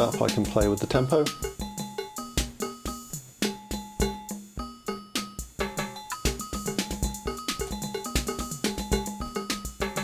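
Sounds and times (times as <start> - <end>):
drum machine hits: 0.0 - 10.0.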